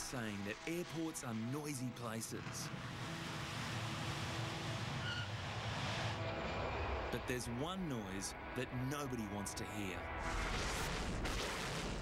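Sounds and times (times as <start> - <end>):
jet engines at takeoff: 0.0 - 12.0.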